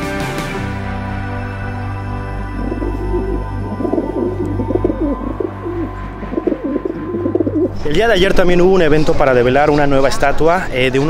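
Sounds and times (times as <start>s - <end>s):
soft background music: 0.0s - 11.0s
pigeons cooing: 2.5s - 7.8s.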